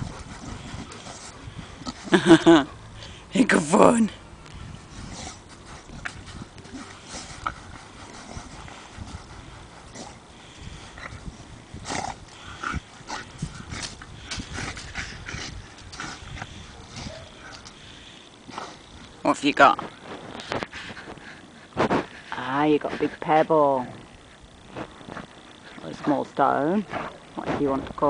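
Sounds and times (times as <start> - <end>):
dog digging in sand: 0.0 - 2.2.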